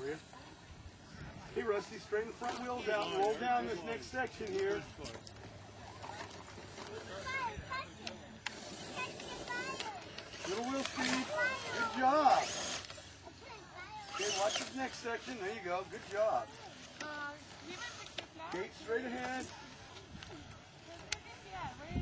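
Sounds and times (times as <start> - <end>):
small electric motor and gears whirring: 0.0 - 22.0.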